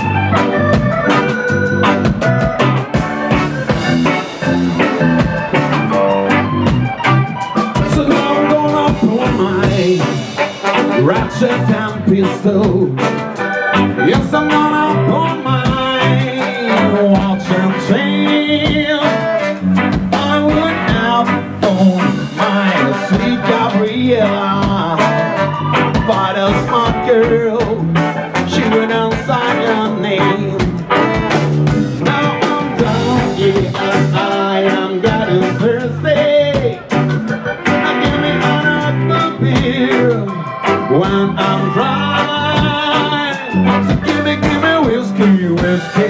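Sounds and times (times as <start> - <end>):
electric guitar strumming: 0.0 - 46.0
ska band playing live: 0.0 - 46.0
man singing into a microphone: 7.8 - 46.0.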